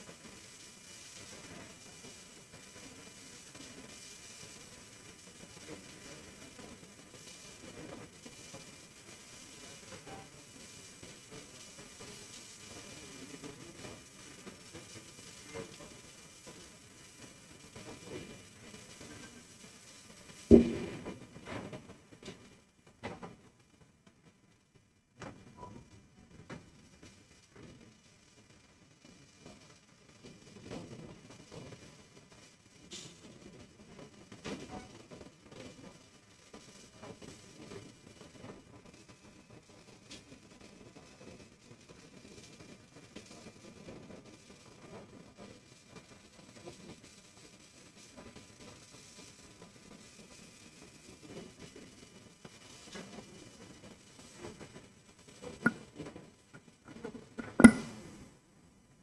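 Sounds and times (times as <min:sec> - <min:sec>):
sharp thumps: 0:20.5 - 0:21.1, 0:57.4 - 0:58.0
soft knocks: 0:20.5 - 0:21.1.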